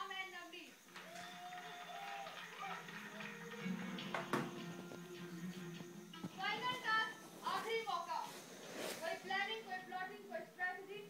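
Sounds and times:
television background music: 0:00.0 - 0:11.0.

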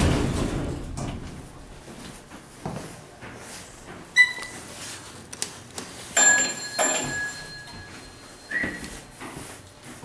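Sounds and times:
elevator doors sliding open: 0:00.0 - 0:01.7
elevator bell ringing: 0:06.2 - 0:09.2.

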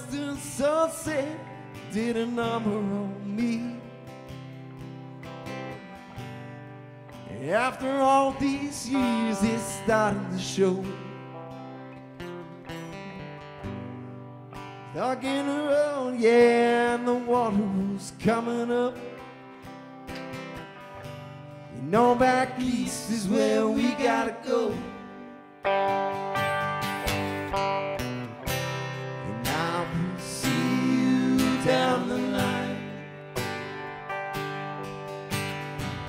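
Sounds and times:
strummed acoustic guitar: 0:00.0 - 0:36.0
electric lead guitar bends: 0:19.0 - 0:36.0.

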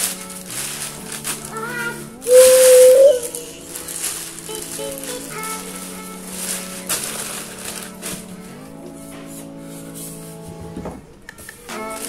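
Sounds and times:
plastic wrap rustling: 0:00.0 - 0:08.4
foam squeaking: 0:00.0 - 0:08.6
background music: 0:00.0 - 0:12.0.

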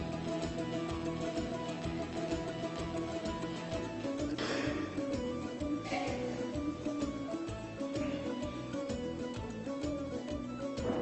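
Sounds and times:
folk-like background music: 0:00.0 - 0:11.0.

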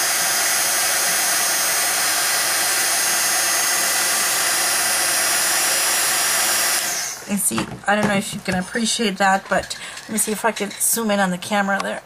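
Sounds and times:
heat gun blowing air: 0:00.0 - 0:07.4.

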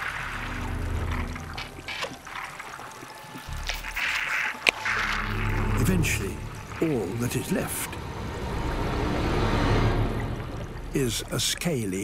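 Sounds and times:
low background music: 0:00.0 - 0:12.0
watery hissing effects: 0:00.0 - 0:12.0.

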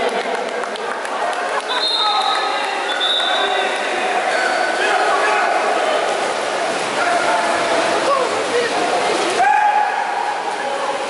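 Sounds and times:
water splashing: 0:00.0 - 0:11.0
players shouting in pool hall: 0:09.3 - 0:10.6.

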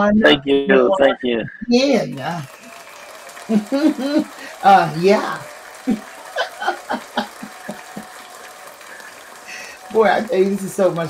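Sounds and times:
soft laughter: 0:06.0 - 0:08.2.

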